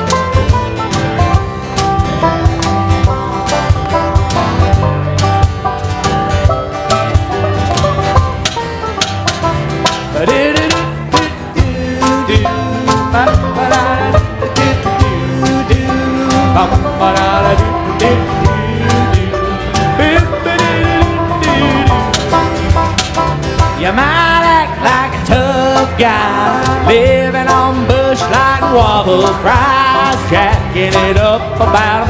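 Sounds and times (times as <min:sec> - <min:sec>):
picked strings: 0:00.0 - 0:32.0
plucked upright bass: 0:00.0 - 0:32.0
steady percussive beat: 0:00.0 - 0:32.0.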